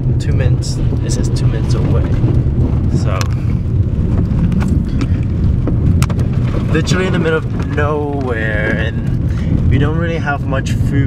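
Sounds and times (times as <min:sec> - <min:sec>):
car cabin rumble on dirt road: 0:00.0 - 0:11.0
wheels knocking over stones: 0:04.0 - 0:09.9.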